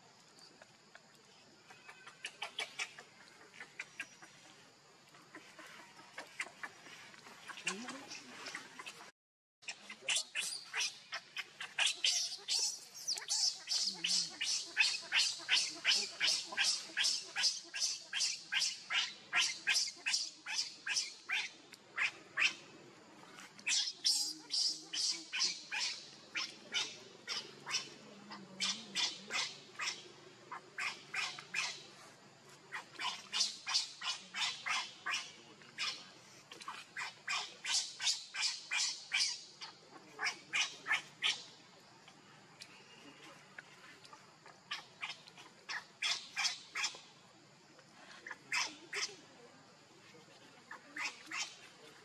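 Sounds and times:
infant monkey crying: 0:09.7 - 0:22.6, 0:23.7 - 0:31.8, 0:32.7 - 0:36.0, 0:36.7 - 0:41.4.

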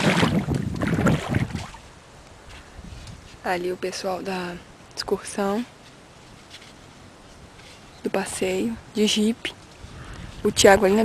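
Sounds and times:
bare feet splashing in water: 0:00.0 - 0:01.9.

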